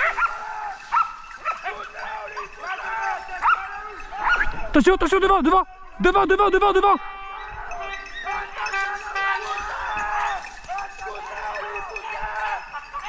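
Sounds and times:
dogs baying in chorus: 0.0 - 4.7, 7.0 - 13.0.

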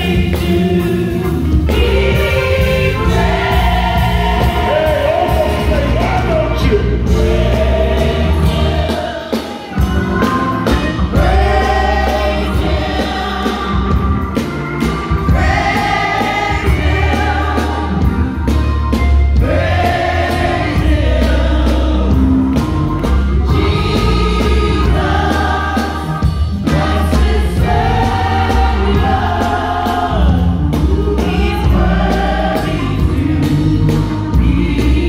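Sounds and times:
gospel singing with band: 0.0 - 35.0.

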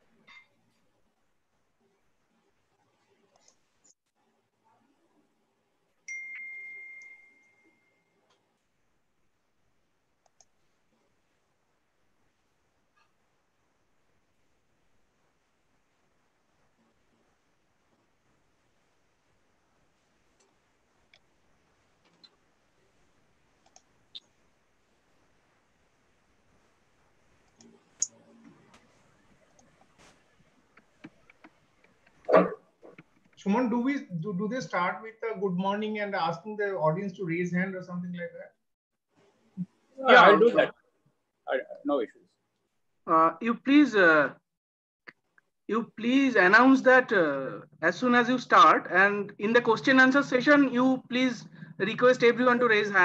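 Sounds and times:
high chime ringing: 6.1 - 8.0
faint clicks: 10.2 - 10.6, 20.4 - 21.3, 23.6 - 24.4
dog bark: 32.3 - 32.6.

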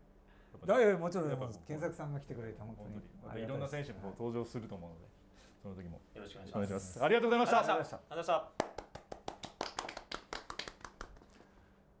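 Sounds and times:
people applauding: 8.6 - 11.6.

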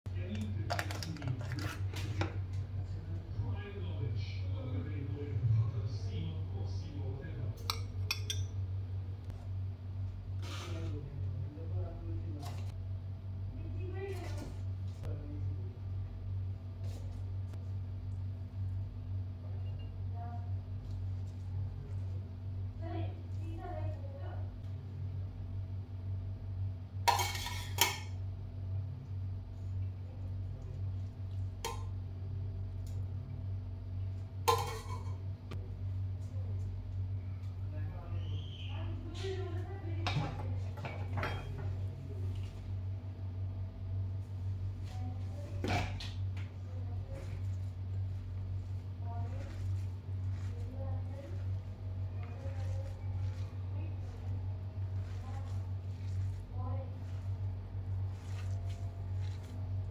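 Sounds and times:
steady low hum: 0.1 - 59.9
metal spoon clinking on pot: 7.6 - 8.6.

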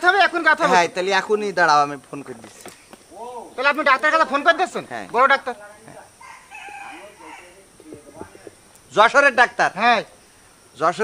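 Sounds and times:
rooster crowing: 6.1 - 8.5.

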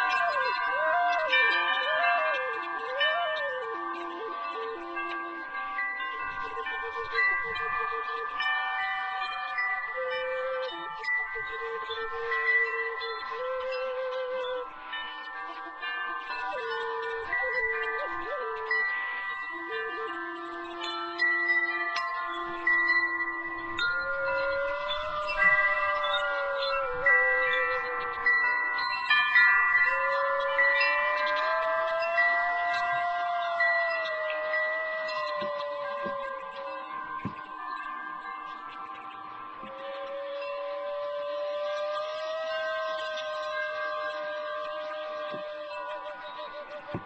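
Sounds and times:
flute playing slow melody: 0.0 - 47.0
wind chimes ringing: 0.0 - 47.0.

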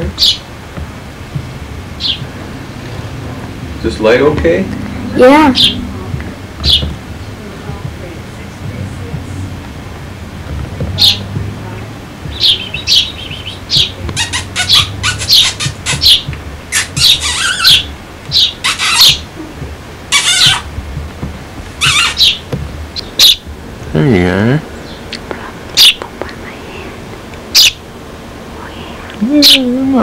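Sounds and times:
young sparrow chirping: 0.0 - 0.5, 1.9 - 3.0, 4.7 - 9.3, 10.8 - 19.3, 20.1 - 20.8, 21.8 - 23.5, 24.8 - 27.8
harsh sparrow squawks: 0.2 - 0.5, 2.0 - 2.3, 4.2 - 5.9, 6.6 - 6.9, 11.0 - 11.3, 12.3 - 19.4, 20.1 - 20.7, 21.8 - 23.5, 24.8 - 26.0, 27.5 - 27.8.

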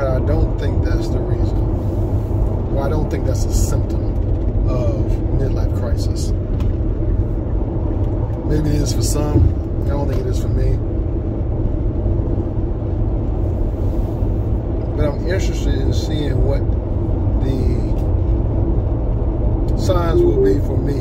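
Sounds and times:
car cabin rumble: 2.3 - 11.0
man's voice: 19.7 - 21.0.

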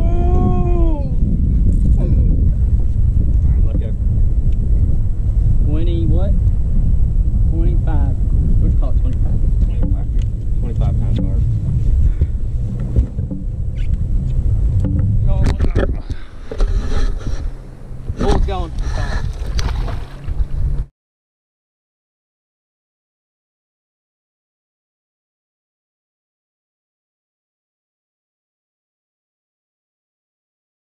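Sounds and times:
wind buffeting microphone: 0.0 - 20.9.

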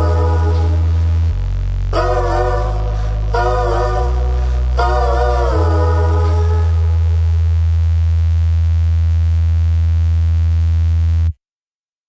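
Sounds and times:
buzzy low drone note: 0.0 - 11.3.

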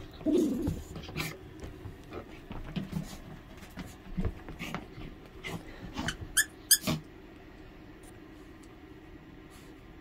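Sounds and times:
squeaky toy squeaking: 6.0 - 6.9.

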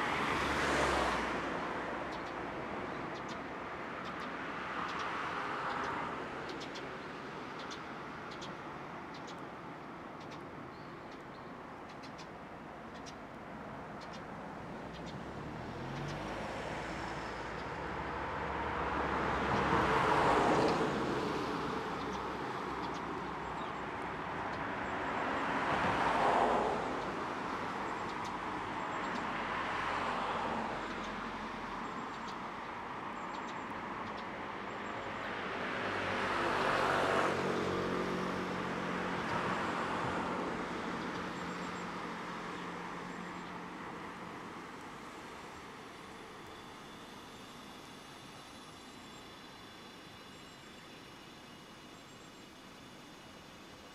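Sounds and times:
vehicle passing close by: 0.0 - 2.9, 15.1 - 32.0, 34.9 - 50.0
road traffic hum: 0.0 - 53.9.

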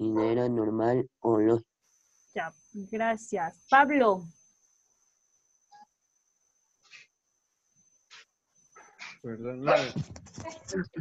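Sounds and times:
faint high whine: 0.0 - 10.9.

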